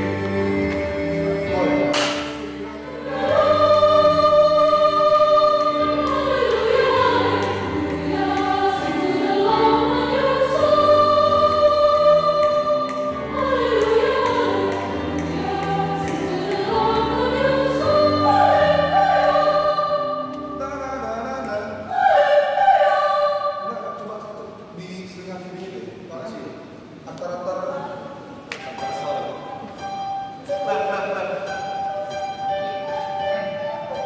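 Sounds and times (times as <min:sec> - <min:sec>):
mixed choir singing: 0:00.0 - 0:24.4.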